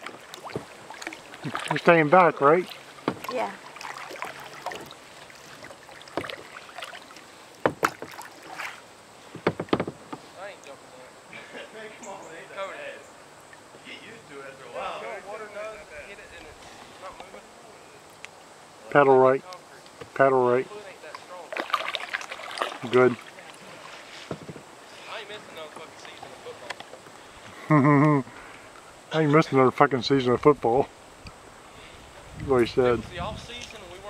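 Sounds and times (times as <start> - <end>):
paddle knocking kayak hull: 0.0 - 1.7, 2.6 - 6.6, 7.6 - 8.7, 9.3 - 10.3, 24.2 - 24.7
paddle splashing in water: 0.0 - 10.4, 21.1 - 27.5
short knocks: 9.3 - 10.2.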